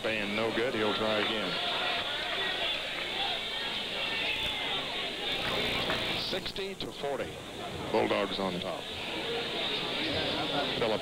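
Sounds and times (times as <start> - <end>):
murmur of spectators chattering: 0.0 - 11.0.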